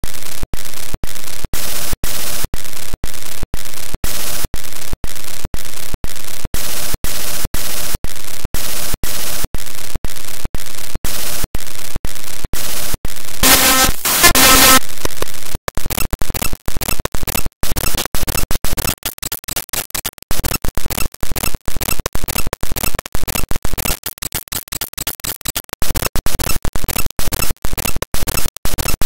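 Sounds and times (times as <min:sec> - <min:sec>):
loud pitched tones: 0:13.4 - 0:15.3
pulsing static hiss: 0:13.4 - 0:15.4.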